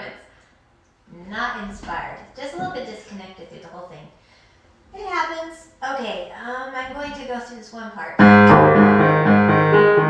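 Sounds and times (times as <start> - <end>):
woman talking: 0.0 - 0.3, 1.1 - 4.2, 4.9 - 8.2.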